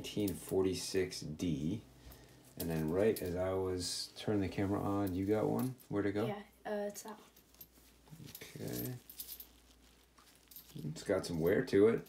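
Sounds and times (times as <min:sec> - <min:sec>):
person speaking: 0:02.6 - 0:07.2
clicks and rustles of handling coin: 0:07.3 - 0:12.0.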